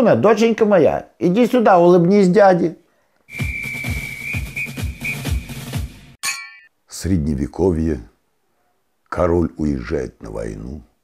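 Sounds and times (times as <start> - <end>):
music jingle with whistle tone: 3.3 - 6.0
bright ding: 6.2 - 6.7.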